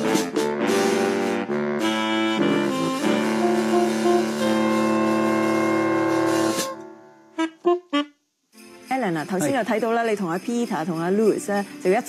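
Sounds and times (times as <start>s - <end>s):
jazz band playing: 0.0s - 8.2s.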